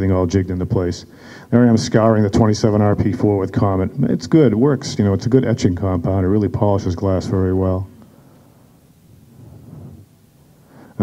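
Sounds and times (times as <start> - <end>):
low room rumble and hiss: 0.0 - 11.0.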